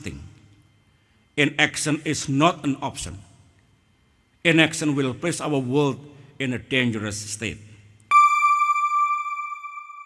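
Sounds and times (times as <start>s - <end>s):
electronic chime: 8.1s - 10.0s.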